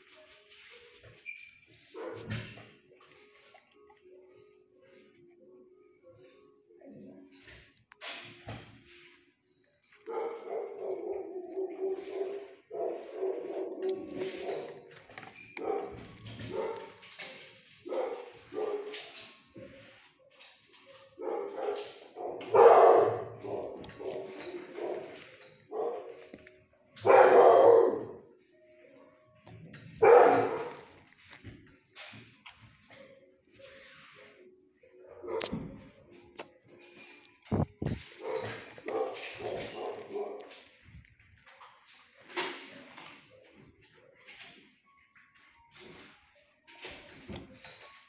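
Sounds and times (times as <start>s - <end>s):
dogs barking: 1.8s - 2.7s, 9.9s - 19.4s, 20.9s - 26.4s, 27.0s - 28.3s, 29.9s - 31.0s, 35.1s - 35.6s, 37.9s - 40.8s.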